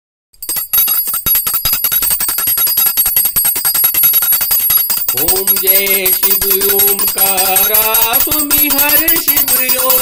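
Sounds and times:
hand bell rung rapidly: 0.4 - 10.0.

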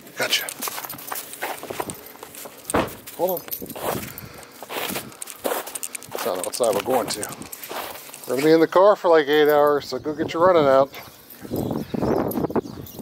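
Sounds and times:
harness and leash jangling: 0.2 - 8.6, 10.9 - 13.0
dog footsteps: 0.2 - 8.7
rustling: 0.4 - 8.6.

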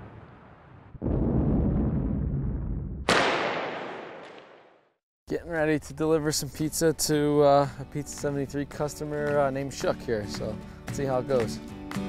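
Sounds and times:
sharp crack with hissing tail: 3.1 - 4.8.

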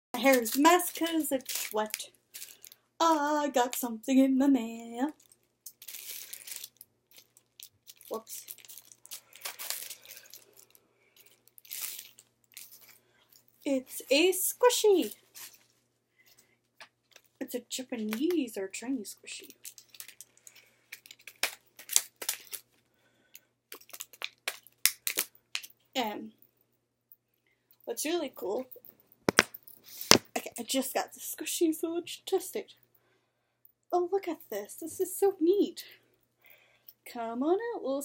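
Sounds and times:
envelope crinkling and rustling: 0.2 - 2.8, 5.2 - 13.1, 19.4 - 22.8, 23.7 - 25.7, 29.3 - 30.3.

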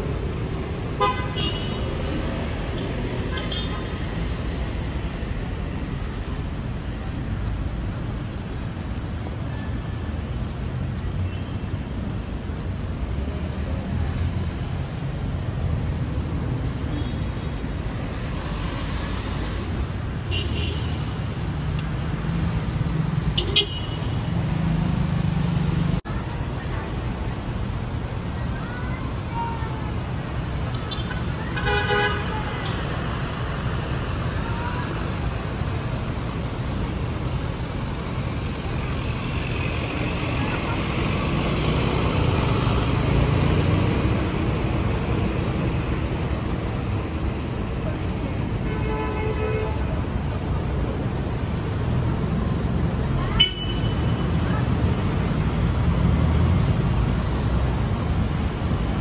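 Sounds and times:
rumble of passing cars: 0.0 - 59.0
car horn: 1.0 - 1.9, 23.4 - 24.2.

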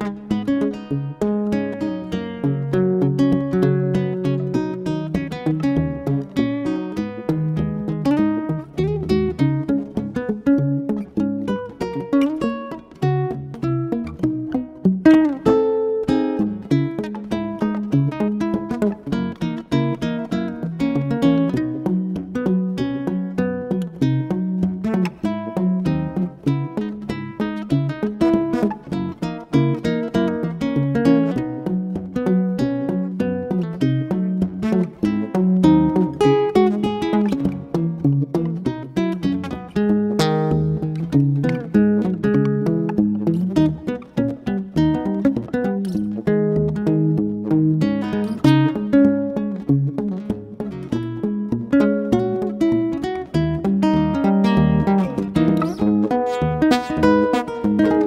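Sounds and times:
classical guitar fingerstyle: 0.0 - 58.0.

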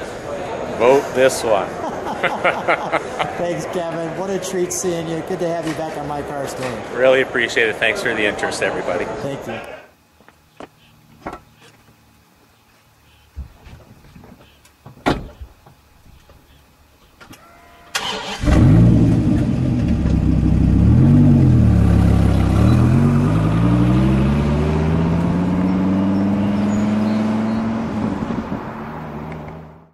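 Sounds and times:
thump: 14.9 - 15.4
sports car engine revving: 18.3 - 29.9.

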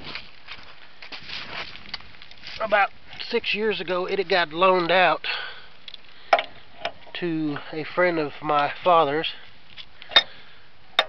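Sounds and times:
footsteps crunching in dry leaves: 0.0 - 4.9.

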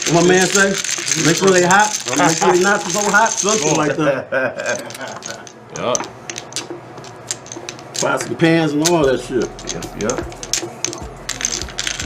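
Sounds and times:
domino tiles clicking: 0.0 - 4.0, 4.6 - 8.2, 8.8 - 12.0.

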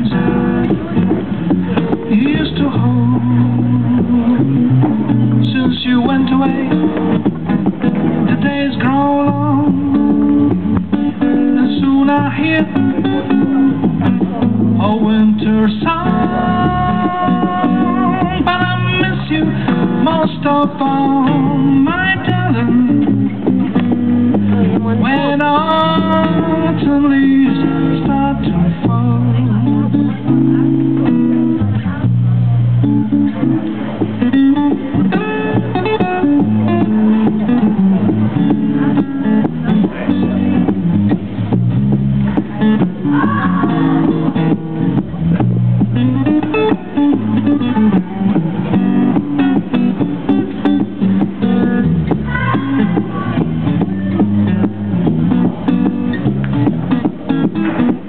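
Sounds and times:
acoustic blues guitar: 0.0 - 58.0.

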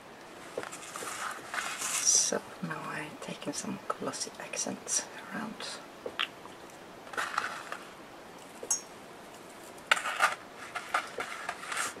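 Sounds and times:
rustle: 0.0 - 2.9, 6.1 - 12.0.

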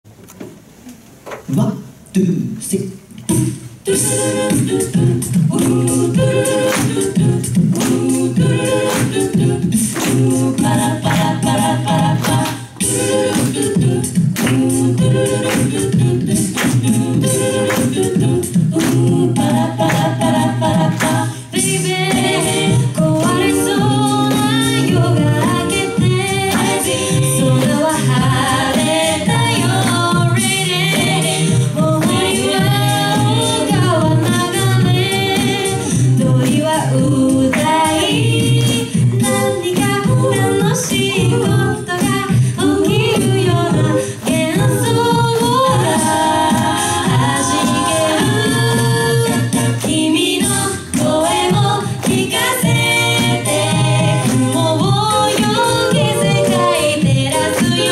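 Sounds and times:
vocal percussive beat: 1.4 - 57.9
lead vocal melody: 1.5 - 57.9
a cappella group singing: 3.2 - 57.9
sung bass line: 4.2 - 57.9.

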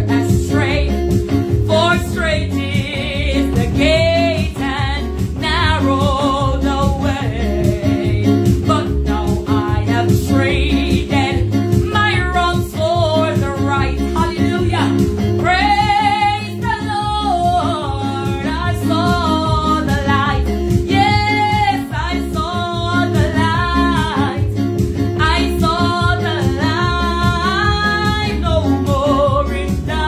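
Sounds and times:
electronic keyboard chords: 0.0 - 30.0
woman singing gospel song: 0.0 - 30.0.

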